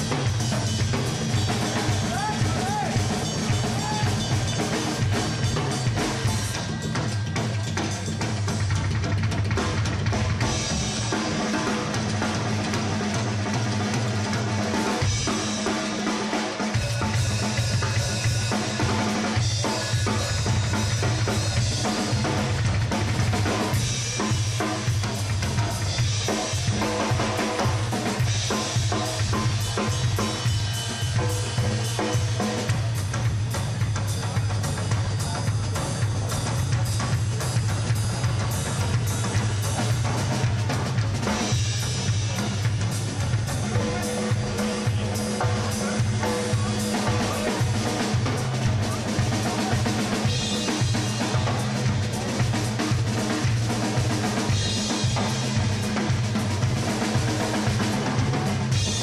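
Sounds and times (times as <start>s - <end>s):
drum kit hits: 0.0s - 59.0s
rock band playing: 0.0s - 59.0s.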